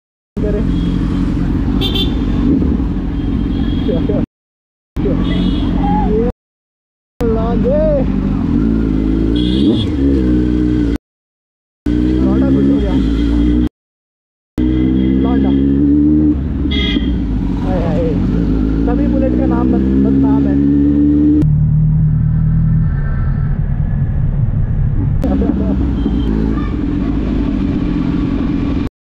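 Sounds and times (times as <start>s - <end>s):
motorcycle engine accelerating: 7.2s - 11.0s, 11.9s - 13.7s, 14.6s - 28.9s
voices: 25.2s - 27.4s.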